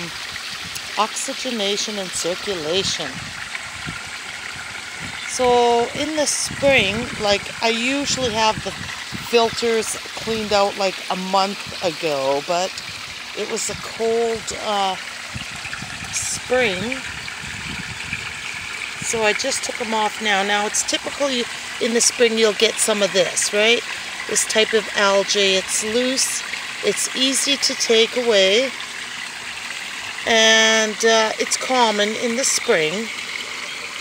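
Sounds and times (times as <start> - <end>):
low pump rumble: 0.0 - 33.6
water rushing and splashing: 0.0 - 34.0.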